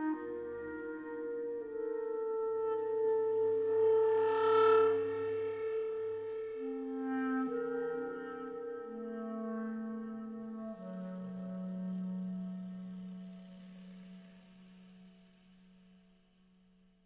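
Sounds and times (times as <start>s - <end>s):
clarinet playing sustained notes: 0.0s - 14.0s.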